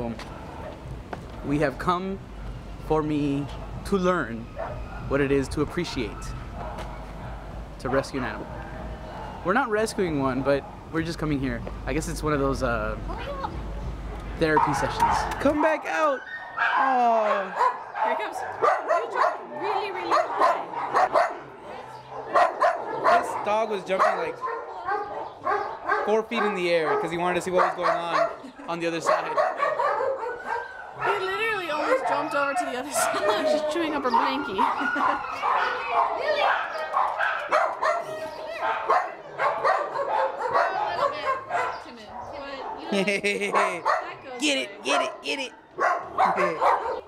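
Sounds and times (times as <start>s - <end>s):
dogs barking: 0.0s - 1.5s, 3.2s - 11.2s, 13.1s - 47.0s.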